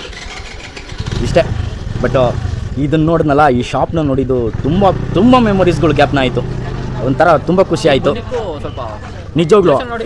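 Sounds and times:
vehicle engine running: 0:00.0 - 0:09.8.

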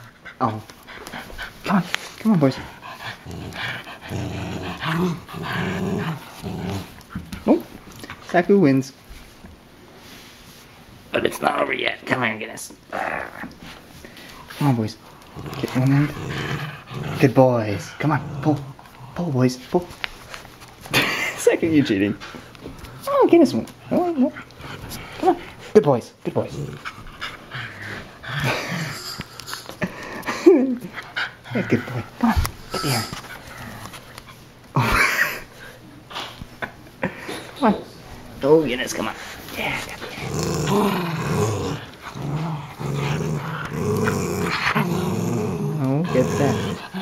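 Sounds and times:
puppies panting: 0:00.0 - 0:08.2, 0:26.7 - 0:34.4, 0:45.8 - 0:47.0
puppies play-growling: 0:00.0 - 0:08.3, 0:12.9 - 0:21.3, 0:26.3 - 0:36.3, 0:39.0 - 0:47.0.

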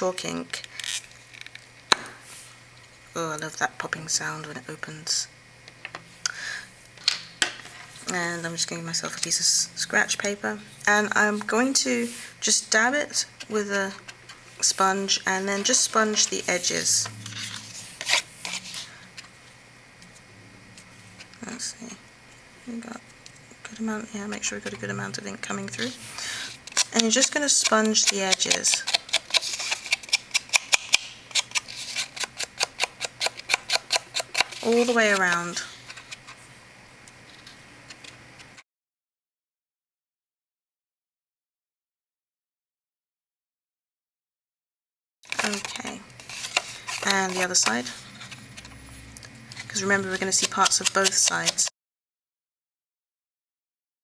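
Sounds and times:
card rustling: 0:13.9 - 0:19.3, 0:25.8 - 0:36.4, 0:45.3 - 0:51.7
sponge dauber tapping cardstock: 0:50.2 - 0:51.6.

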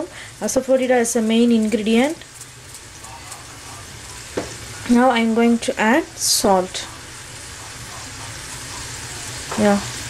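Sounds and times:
pan simmering with low hiss: 0:00.0 - 0:10.0.

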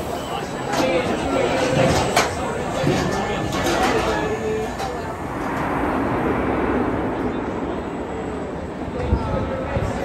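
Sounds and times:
riders' voices: 0:00.0 - 0:05.8
roller coaster wheels rumbling: 0:00.0 - 0:10.0.

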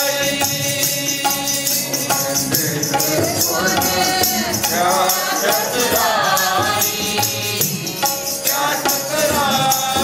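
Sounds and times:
tabla drumming: 0:00.0 - 0:10.0
voices singing a hymn: 0:00.0 - 0:10.0.

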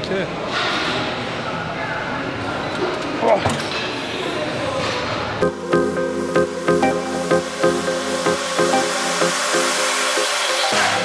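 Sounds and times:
busy gym background noise: 0:00.0 - 0:05.4
electronic dance music: 0:05.4 - 0:11.0.

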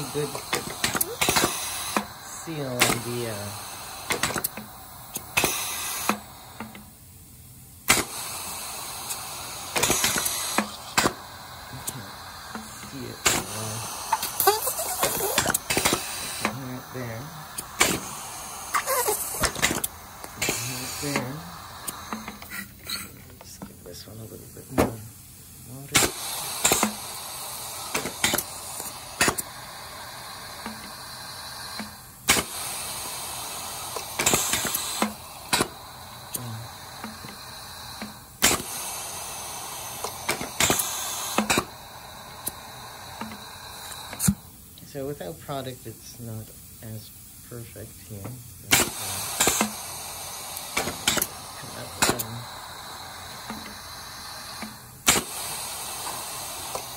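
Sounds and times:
air hissing: 0:00.0 - 0:56.9.

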